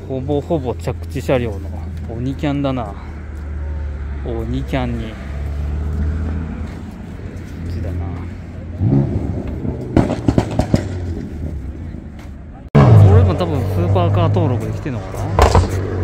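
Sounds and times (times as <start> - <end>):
people's voices: 6.6 - 10.1, 11.4 - 15.9.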